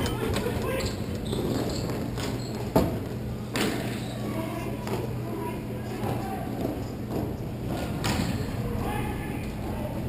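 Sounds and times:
players' voices: 0.0 - 1.7, 3.3 - 10.0.

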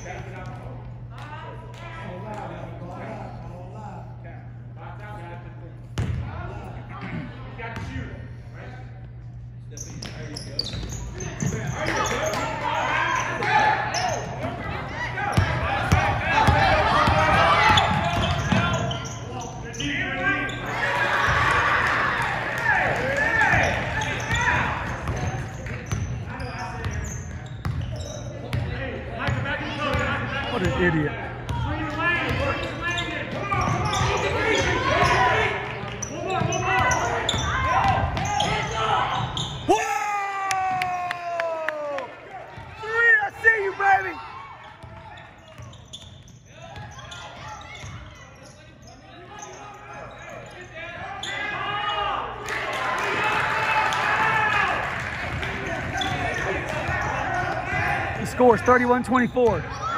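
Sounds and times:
people talking in echoing gym: 0.0 - 59.9.

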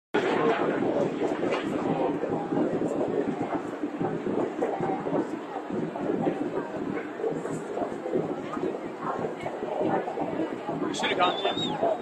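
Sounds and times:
crowd babble: 0.2 - 12.0.

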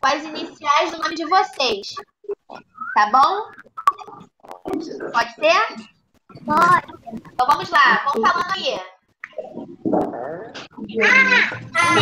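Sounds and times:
young children's voices: 6.3 - 8.6, 10.5 - 12.0.

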